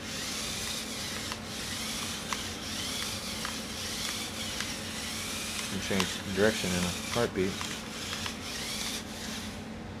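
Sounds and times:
robot motors whirring: 0:00.0 - 0:09.6
faint motor whine: 0:00.0 - 0:10.0.

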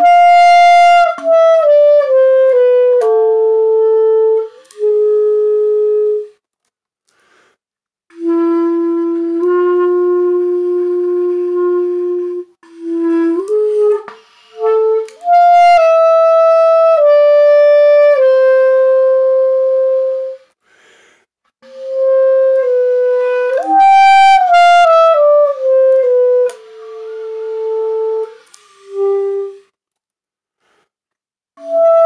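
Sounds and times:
solo clarinet: 0:00.0 - 0:06.4, 0:08.1 - 0:20.6, 0:21.6 - 0:29.8, 0:31.6 - 0:32.0.

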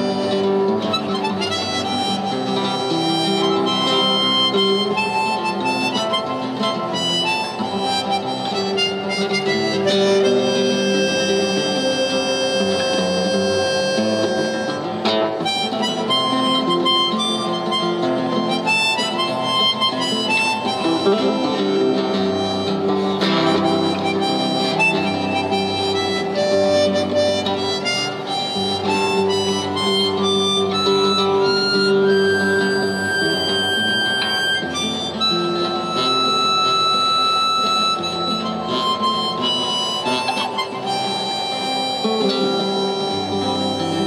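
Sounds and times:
harmonica melody: 0:00.0 - 0:44.0
nylon-string guitar: 0:00.0 - 0:44.0.

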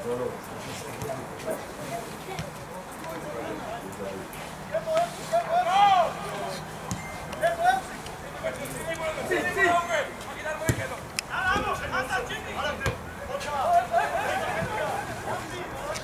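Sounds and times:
footballers shouting: 0:04.7 - 0:16.0
ball being kicked: 0:10.7 - 0:10.9.

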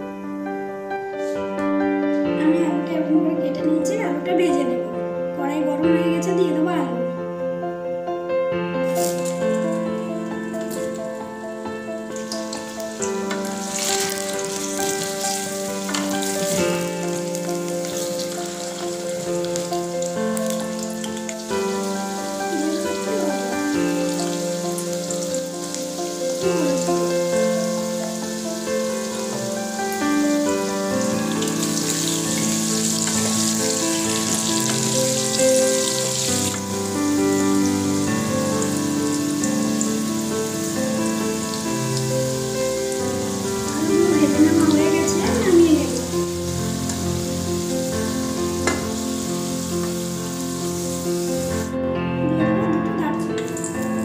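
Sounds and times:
instrumental background music: 0:00.0 - 0:54.0
potatoes sizzling in hot oil: 0:08.9 - 0:11.3, 0:12.0 - 0:51.7, 0:53.3 - 0:54.0.

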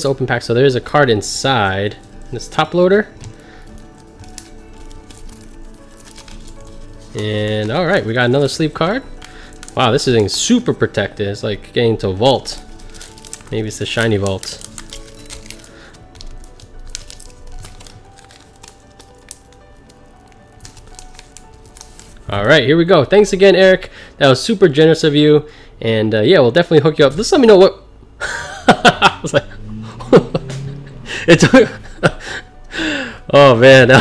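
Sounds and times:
foil wrapper crinkling: 0:00.0 - 0:22.5
soft background music: 0:00.0 - 0:34.0.

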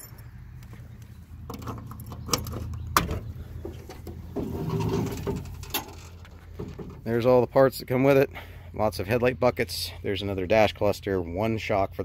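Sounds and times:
trunk lid creaking: 0:01.4 - 0:07.2.

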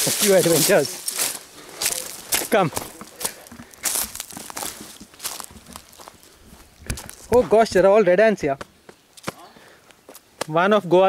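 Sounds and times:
footsteps through dry leaves: 0:00.0 - 0:07.6.

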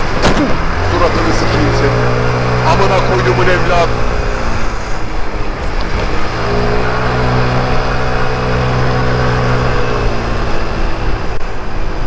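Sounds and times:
wind and road noise: 0:00.0 - 0:12.0.

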